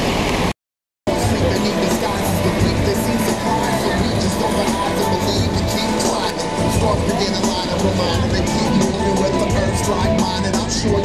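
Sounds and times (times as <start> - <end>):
background music: 1.1 - 11.0
steady rumbling noise: 1.1 - 11.0.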